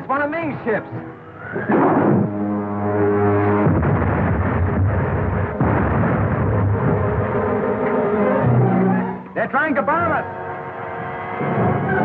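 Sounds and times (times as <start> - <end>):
dramatic orchestral music: 0.2 - 12.0
loud rough rushing noise: 1.4 - 8.5.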